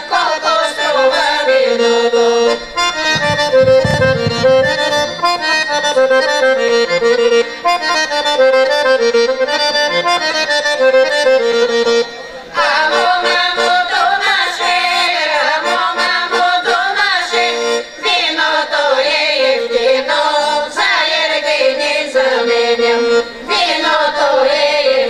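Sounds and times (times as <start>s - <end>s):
women singing: 0.0s - 2.3s, 12.6s - 25.0s
accordion folk melody: 0.0s - 25.0s.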